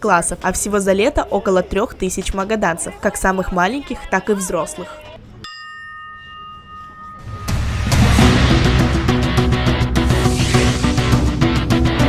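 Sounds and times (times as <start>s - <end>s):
ship's bell ringing: 4.3s - 8.4s.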